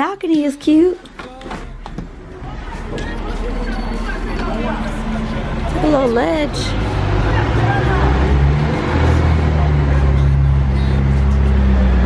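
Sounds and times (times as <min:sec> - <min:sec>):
vehicle engine humming: 0:00.0 - 0:12.0
faint voices: 0:00.8 - 0:12.0.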